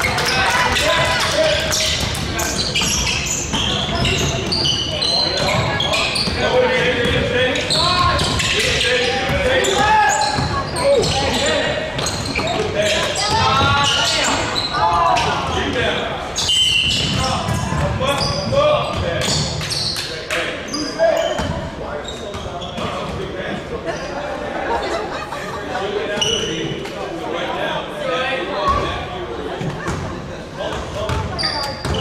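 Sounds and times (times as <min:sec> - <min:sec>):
sneakers squeaking: 0:00.0 - 0:24.4, 0:26.1 - 0:27.0, 0:28.6 - 0:32.0.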